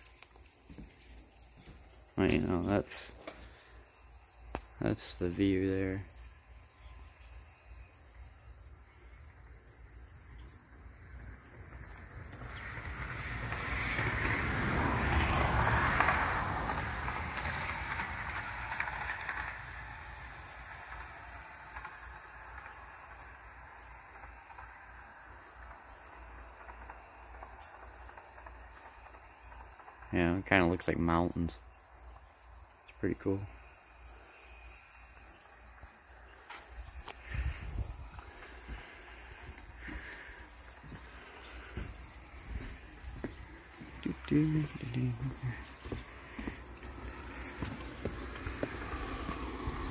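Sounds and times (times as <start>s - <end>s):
crickets chirping: 0.0s - 49.9s
vehicle passing: 12.0s - 21.5s, 36.5s - 49.9s.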